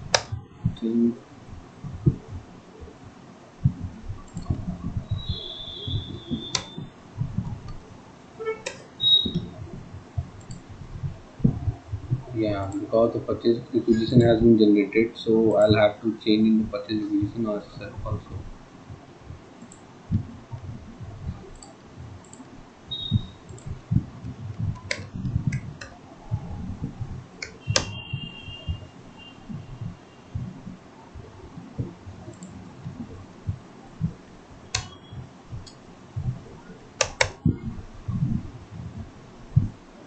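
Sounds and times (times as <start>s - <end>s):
computer mouse clicks: 0.1s - 0.4s, 4.2s - 7.8s, 8.4s - 9.5s, 10.3s - 10.7s, 19.6s - 20.7s, 21.5s - 26.0s, 27.4s - 28.8s, 31.8s - 33.0s, 34.7s - 35.8s, 37.0s - 37.7s
mouse clicks: 5.2s - 6.8s, 27.4s - 28.3s, 34.7s - 35.0s, 37.0s - 37.6s
keyboard keystrokes: 5.9s - 6.8s, 21.6s - 25.9s, 27.4s - 28.2s, 34.8s - 35.0s, 37.0s - 37.6s.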